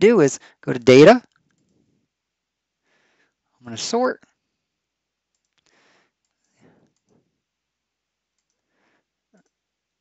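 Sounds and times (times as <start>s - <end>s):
computer mouse clicks: 5.3s - 7.2s, 8.3s - 8.7s.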